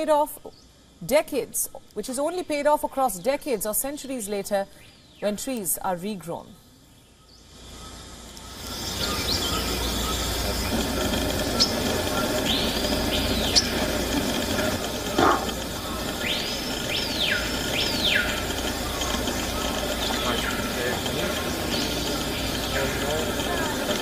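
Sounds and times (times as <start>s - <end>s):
insects hissing: 0.0s - 24.0s.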